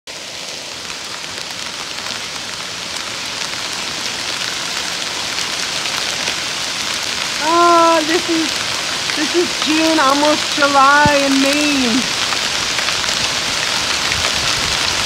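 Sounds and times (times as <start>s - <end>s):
heavy rain on roof: 0.1s - 15.0s
hailstones ticking on roof: 0.8s - 15.0s
person speaking: 7.4s - 8.5s, 9.2s - 12.1s.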